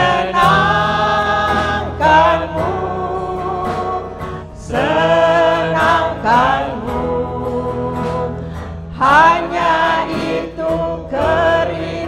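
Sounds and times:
congregation singing: 0.0 - 12.0
low steady accompaniment: 0.0 - 12.0.

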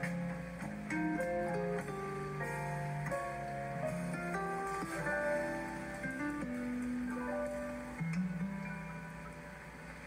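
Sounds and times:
calm instrumental meditation music: 0.0 - 10.0.

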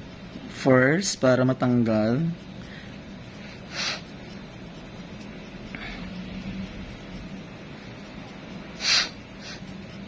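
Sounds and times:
metal tool scraping toenail: 0.0 - 10.0.

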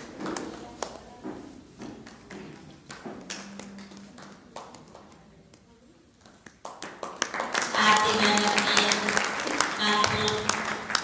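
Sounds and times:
scattered hand claps: 1.8 - 11.0.

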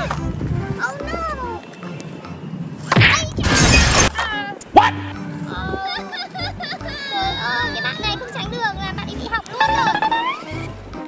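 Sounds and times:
cartoon crash: 2.9 - 5.1
cartoon squeaky calls: 9.6 - 10.6.

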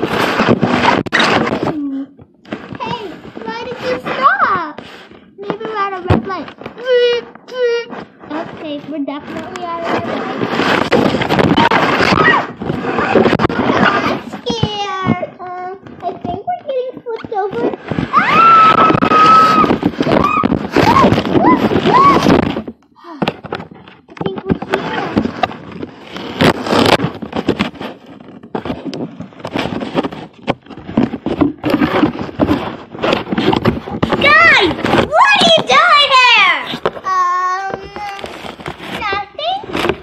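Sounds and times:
plastic wrapping crinkling: 0.0 - 40.0.

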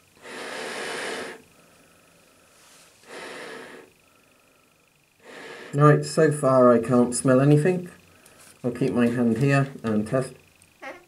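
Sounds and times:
breathing through gas mask: 0.2 - 5.9.

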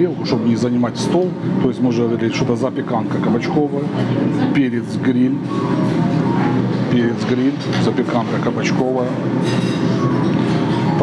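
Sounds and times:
busy cafe din: 0.0 - 11.0
music playing: 5.1 - 11.0.

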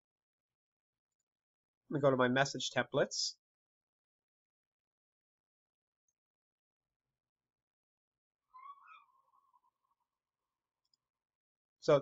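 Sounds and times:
faint high wavering cry: 8.5 - 10.0.

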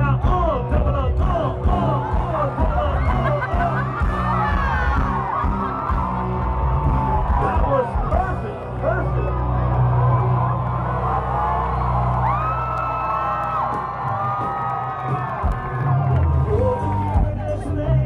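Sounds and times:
amplified live band music: 0.0 - 18.0
crowd cheering and whooping: 1.4 - 18.0.

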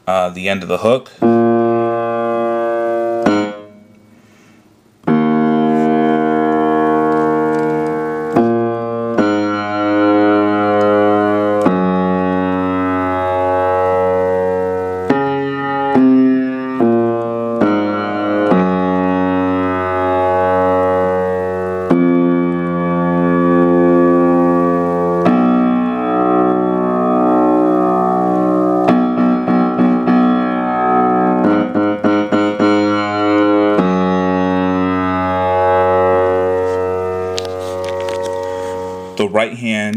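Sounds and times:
piano playing slow chords: 1.2 - 4.4, 5.0 - 39.5.

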